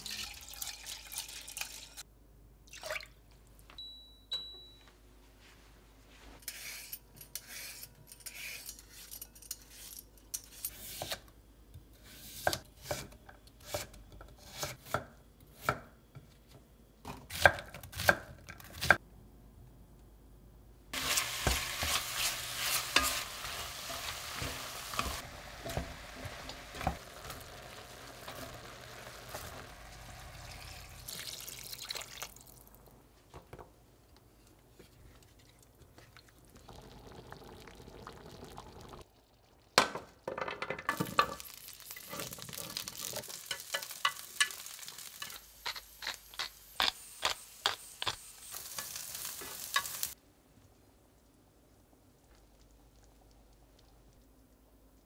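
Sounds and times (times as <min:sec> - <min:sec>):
cooktop electronic beep: 0:03.8 - 0:04.9
food sizzling in hot oil: 0:21.0 - 0:32.4, 0:41.0 - 0:50.2.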